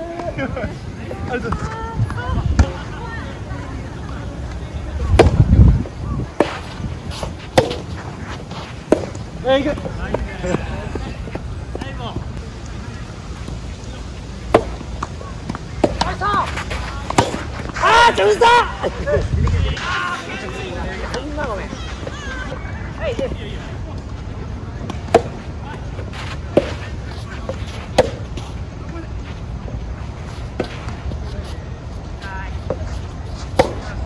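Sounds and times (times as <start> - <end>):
tennis racket hitting ball: 6.4 - 8.0, 8.8 - 9.2, 14.4 - 17.8, 25.0 - 25.4, 26.5 - 28.3, 33.5 - 33.9.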